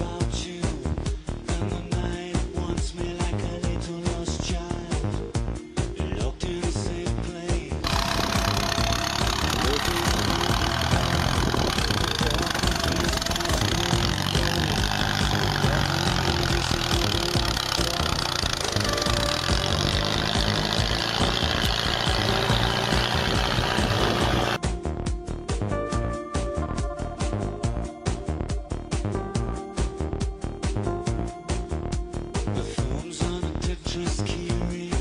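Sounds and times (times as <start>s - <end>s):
vehicle engine under load: 7.8s - 24.6s
people talking: 11.9s - 14.1s.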